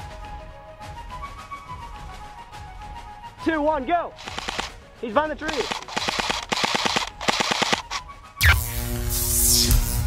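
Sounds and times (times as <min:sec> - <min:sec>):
airsoft rifle firing bursts: 0:04.2 - 0:04.8, 0:05.4 - 0:08.0.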